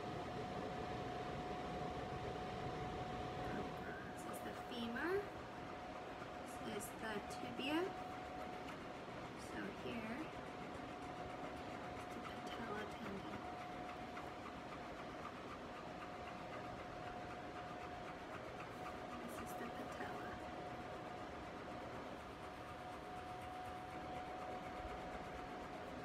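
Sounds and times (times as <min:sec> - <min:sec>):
background hum: 0:00.0 - 0:26.0
thin whine: 0:00.0 - 0:26.0.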